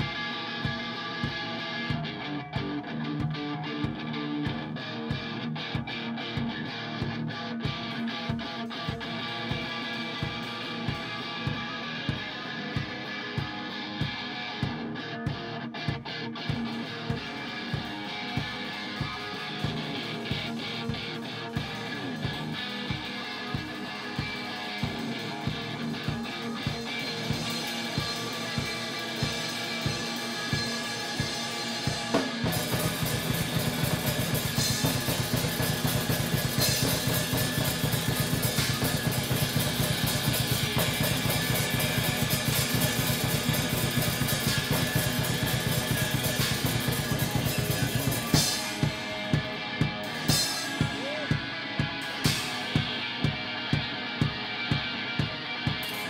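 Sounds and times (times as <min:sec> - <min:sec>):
drum kit beat: 0:00.0 - 0:56.0
electric guitar: 0:00.0 - 0:56.0.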